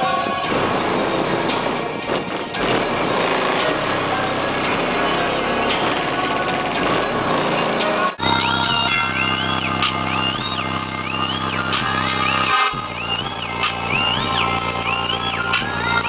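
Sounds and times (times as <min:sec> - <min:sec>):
bass-heavy music from car stereo: 0:00.0 - 0:16.0.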